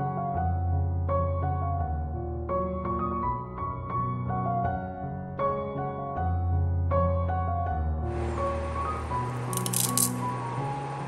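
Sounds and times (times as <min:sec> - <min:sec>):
background piano music: 0:00.0 - 0:11.0
sugar lumps rattling in saucepan: 0:09.6 - 0:10.2.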